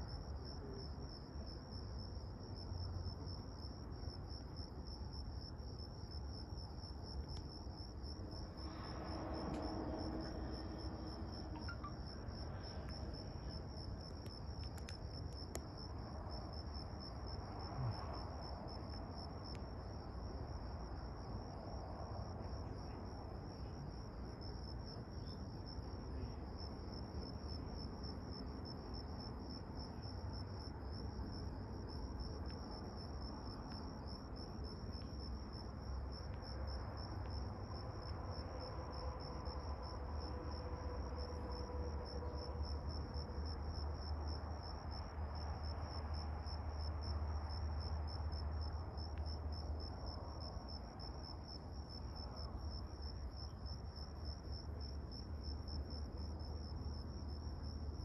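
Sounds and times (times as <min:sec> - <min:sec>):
crickets chirping: 0:00.0 - 0:58.0
faint hum: 0:00.0 - 0:58.0
low steady rumble: 0:05.7 - 0:24.4.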